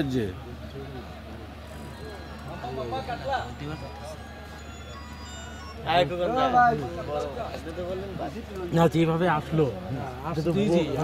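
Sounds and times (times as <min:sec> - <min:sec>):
jingle of high notes: 0:01.7 - 0:06.7.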